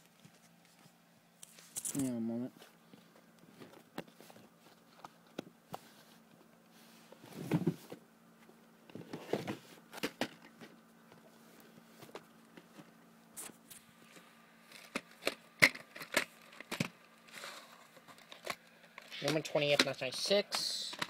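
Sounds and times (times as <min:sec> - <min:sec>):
plastic cases clicking and knocking: 0:14.7 - 0:17.0.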